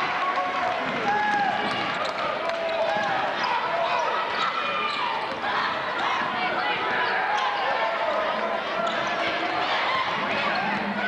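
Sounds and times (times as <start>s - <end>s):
voices echoing in gym: 0.0s - 11.0s.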